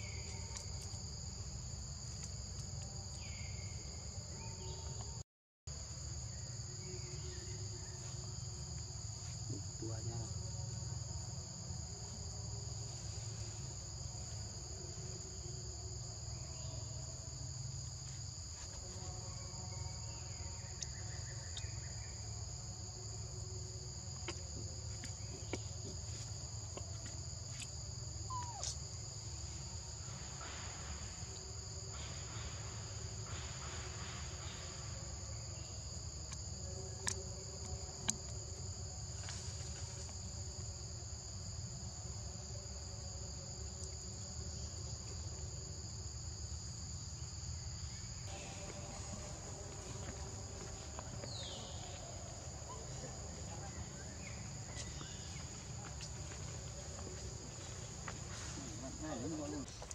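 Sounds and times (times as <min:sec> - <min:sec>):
forest insects shrilling: 0:27.4 - 0:36.5.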